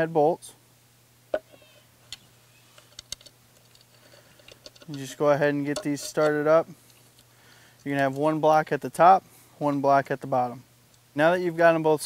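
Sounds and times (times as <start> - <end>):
light clicks of parts handled: 2.1 - 8.4.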